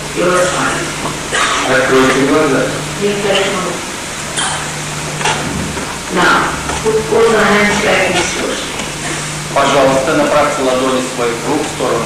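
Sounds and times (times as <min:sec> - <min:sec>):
recording hiss: 0:00.0 - 0:12.0.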